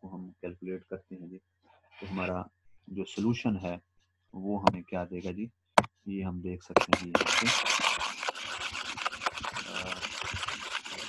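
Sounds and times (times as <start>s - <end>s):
stylus scrubbing on tablet: 6.8s - 11.0s.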